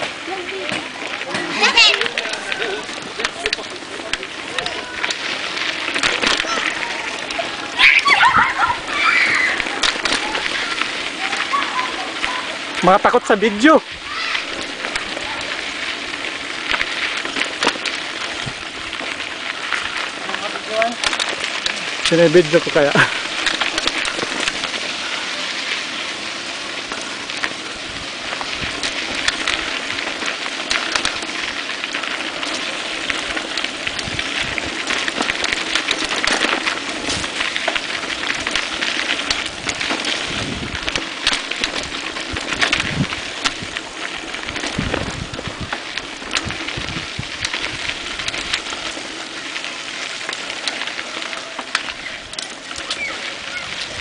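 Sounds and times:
bike clicks and knocks: 0.0 - 54.0
bike tyres on stony dirt: 0.0 - 54.0.

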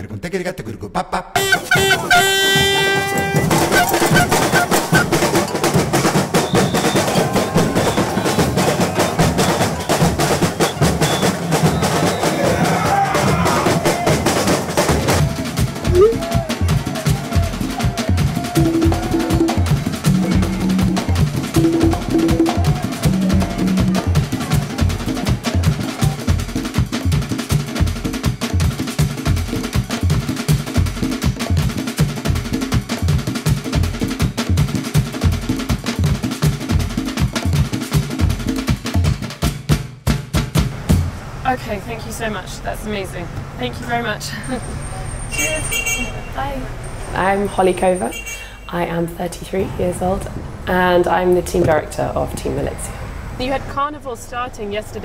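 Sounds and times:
fast steady drumming: 1.4 - 41.1.

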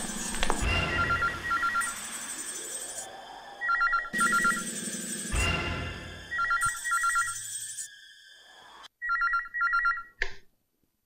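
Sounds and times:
film music: 0.0 - 8.9
telephone ringing electronic trill: 0.9 - 2.8, 3.6 - 7.9.

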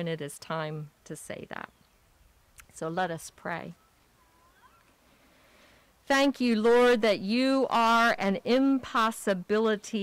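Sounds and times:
faint high chirps: 3.7 - 5.0.

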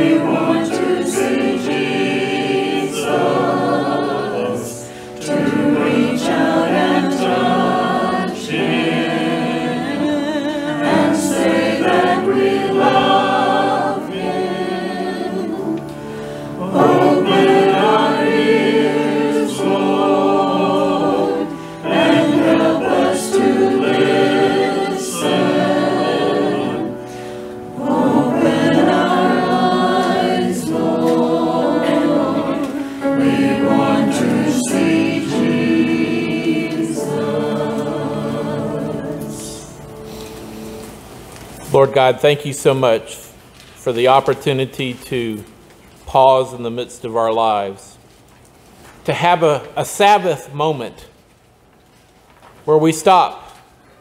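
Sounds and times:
choir singing a hymn: 0.0 - 41.0.

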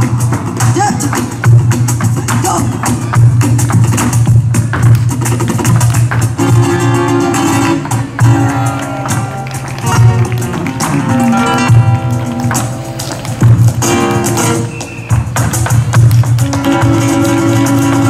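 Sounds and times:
flamenco guitar playing: 0.0 - 18.0.

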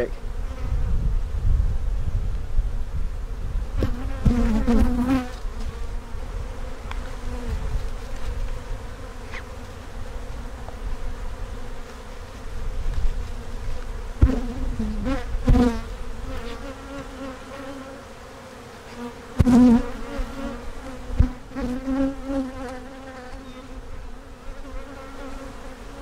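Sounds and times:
bees buzzing: 3.2 - 26.0.

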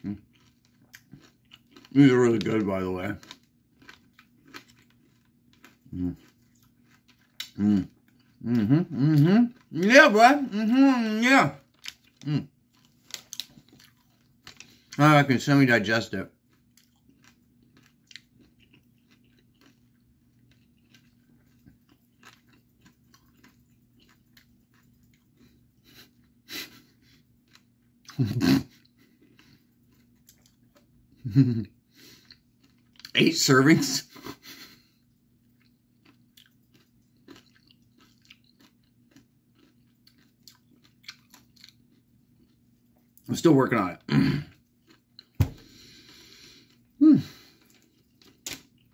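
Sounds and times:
mouth chewing candy: 0.0 - 48.9.

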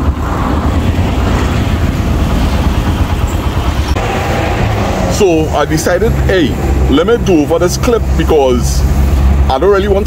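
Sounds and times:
motorcycle engine rumble: 0.0 - 10.0
wind buffeting microphone: 0.0 - 10.0.

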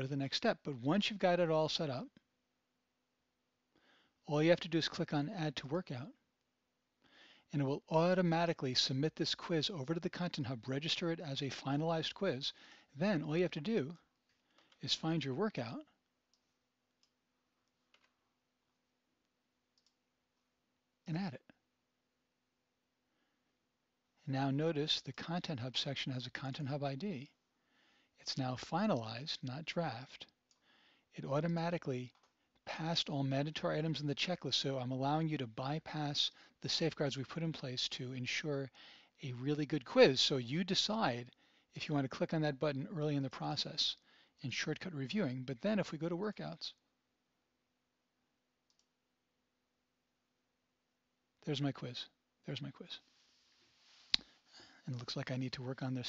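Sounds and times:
computer mouse click: 19.8 - 20.0.

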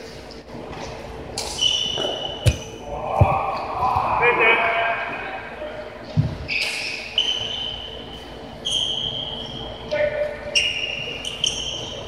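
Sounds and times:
players' voices in hall: 0.0 - 12.0
dull thud: 2.4 - 3.4.

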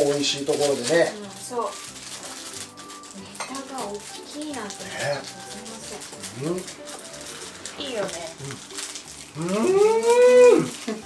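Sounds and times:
person humming with delight: 9.4 - 11.0.

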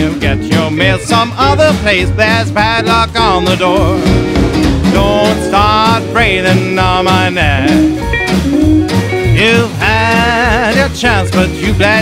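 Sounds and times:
person singing: 0.0 - 8.0, 9.3 - 12.0
guitar: 0.0 - 12.0
upright bass beat: 0.0 - 12.0.

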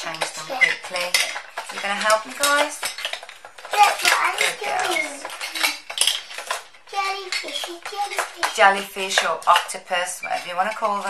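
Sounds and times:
plastic toy pieces clattering: 0.0 - 11.0.

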